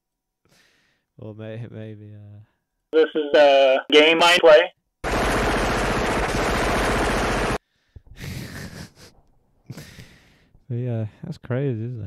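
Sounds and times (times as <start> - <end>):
rapid automatic gunfire: 5.0 - 7.6.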